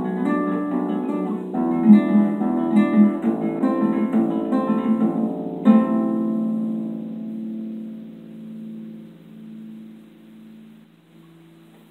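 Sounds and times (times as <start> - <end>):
guitar chord ringing: 0.0 - 11.9.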